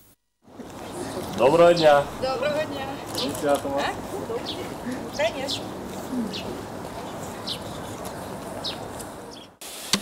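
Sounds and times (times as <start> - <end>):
low background noise: 0.0 - 9.6.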